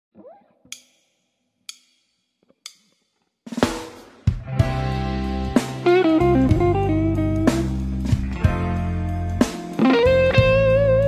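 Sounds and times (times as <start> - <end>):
blues band playing: 4.3 - 11.0
electric guitar: 4.4 - 11.0.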